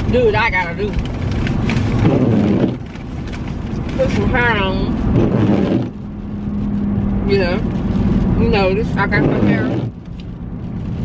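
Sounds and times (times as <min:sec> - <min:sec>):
car road and engine rumble: 0:00.0 - 0:11.0.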